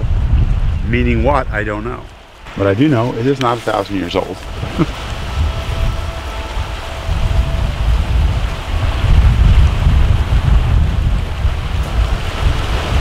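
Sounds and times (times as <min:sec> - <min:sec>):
wind gusting on microphone: 0:00.0 - 0:13.0
small waves on rocky shore: 0:02.1 - 0:13.0.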